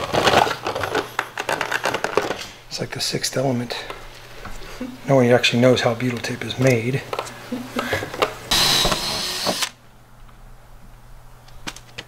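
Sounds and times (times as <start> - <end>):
cordless drill whining: 8.5 - 9.8.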